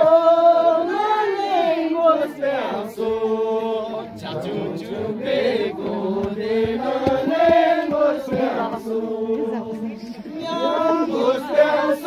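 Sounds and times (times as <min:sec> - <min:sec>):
group singing unaccompanied: 0:00.0 - 0:12.0.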